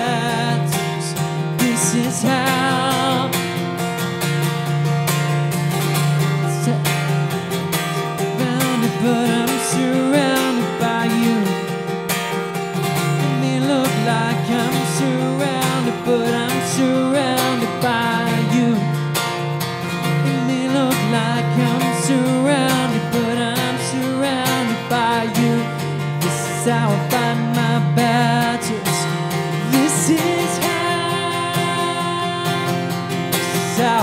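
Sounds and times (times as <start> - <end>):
man singing worship song: 0.0 - 3.3, 13.2 - 18.8, 29.7 - 32.7
strummed acoustic guitar: 0.0 - 34.0.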